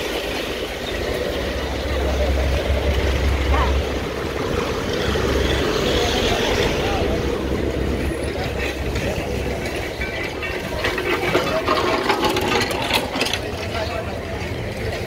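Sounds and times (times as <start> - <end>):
people talking: 0.0 - 15.0
scooter and car engines: 0.0 - 15.0.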